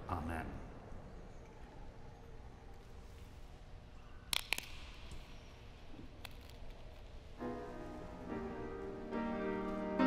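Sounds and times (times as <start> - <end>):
wafer snapping: 4.3 - 7.2.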